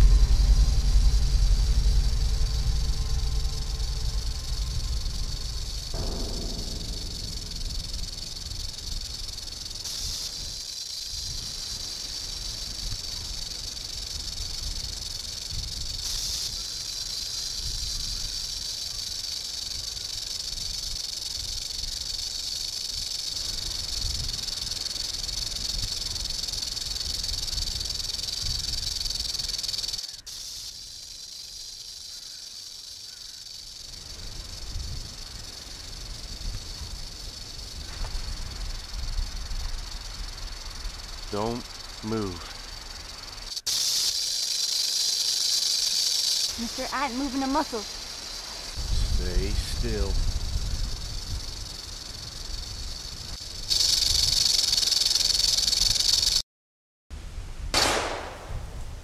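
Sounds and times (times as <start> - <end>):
low background rumble: 0.0 - 29.7
rattlesnake rattling: 0.0 - 56.4.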